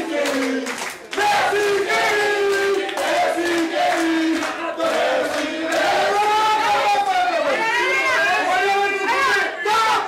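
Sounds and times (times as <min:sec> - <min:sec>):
men chanting loudly: 0:00.0 - 0:10.0.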